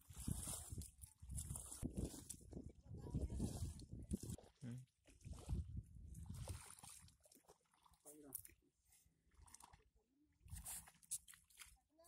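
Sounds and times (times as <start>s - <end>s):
paddy water splashing: 0.0s - 2.6s, 3.3s - 8.4s, 9.3s - 12.0s.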